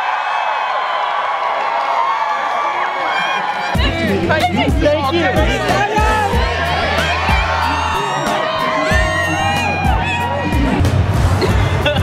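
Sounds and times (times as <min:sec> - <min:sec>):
crowd cheering and whooping: 0:00.0 - 0:12.0
background music with steady beat: 0:03.8 - 0:12.0.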